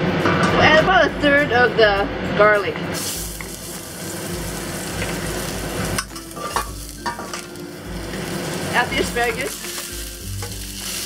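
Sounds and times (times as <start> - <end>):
garlic sizzling in hot oil: 3.0 - 11.0.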